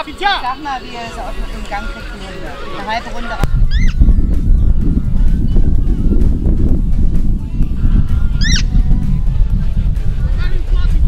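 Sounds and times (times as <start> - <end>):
steady low rumble: 3.4 - 11.0.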